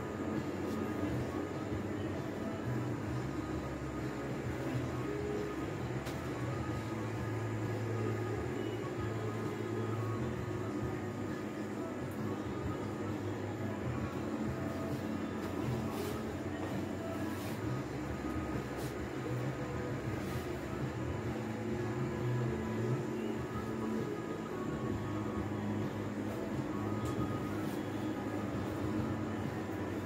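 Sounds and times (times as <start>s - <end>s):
steady low motor hum: 0.0s - 30.0s.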